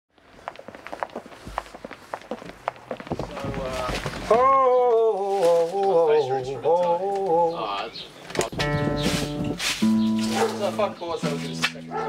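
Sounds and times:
footsteps on paved street: 0:00.1 - 0:12.0.

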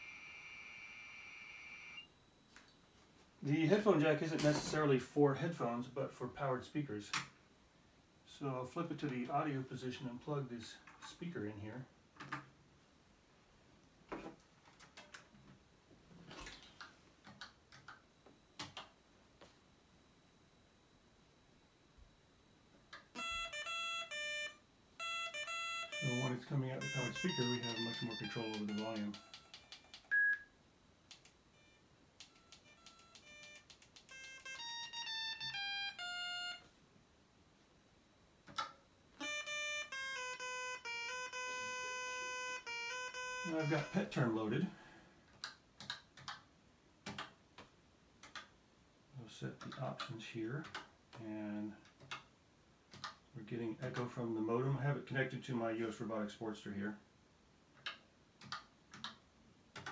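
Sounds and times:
buzzy electronic beep melody: 0:23.2 - 0:29.3, 0:39.2 - 0:44.1
keyboard keystrokes: 0:47.1 - 0:48.5.

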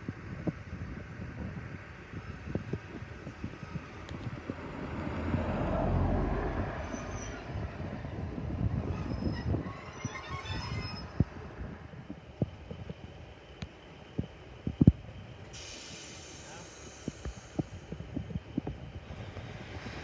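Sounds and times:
diesel train engine and wheels: 0:00.0 - 0:20.0
brakes squealing: 0:00.2 - 0:20.0.

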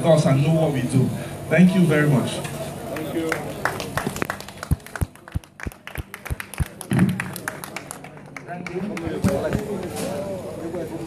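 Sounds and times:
audience clapping: 0:02.9 - 0:09.9.

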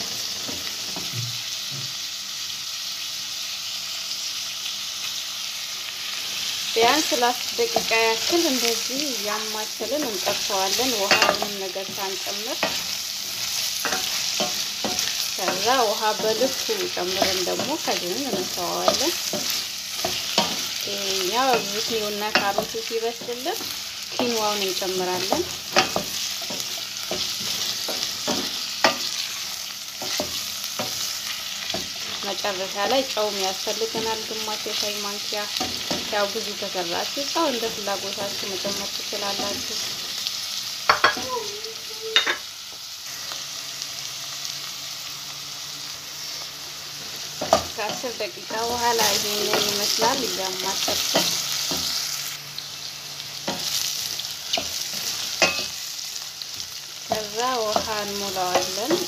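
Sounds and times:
vegetables sizzling in a pot: 0:00.0 - 0:59.0.

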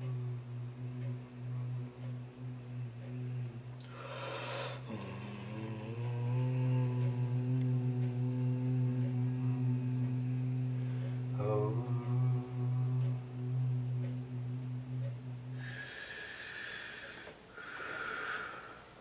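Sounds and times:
man chanting low tone: 0:00.0 - 0:16.2.

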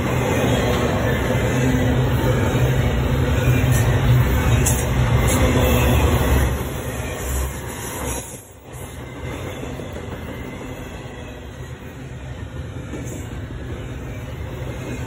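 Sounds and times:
train rumbling and rattling past: 0:00.0 - 0:15.0.

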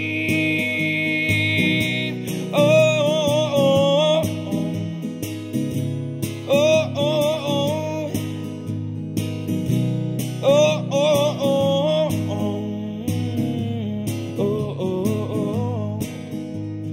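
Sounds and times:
man singing: 0:00.0 - 0:05.0, 0:06.4 - 0:08.6, 0:10.4 - 0:16.3
strummed acoustic guitar: 0:00.0 - 0:16.9.

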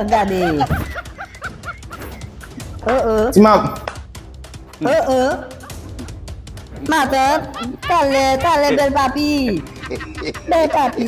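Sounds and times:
background music with ticking beat: 0:00.0 - 0:11.0.

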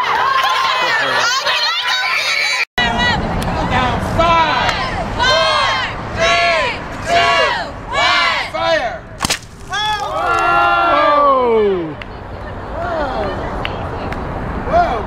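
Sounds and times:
crowd exclaiming whoa: 0:09.7 - 0:12.0.

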